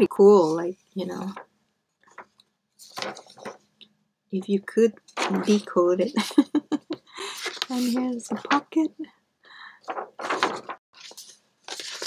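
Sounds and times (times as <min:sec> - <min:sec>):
paper rustling: 0:01.2 - 0:03.8, 0:05.0 - 0:06.5, 0:07.2 - 0:08.9, 0:09.8 - 0:12.0.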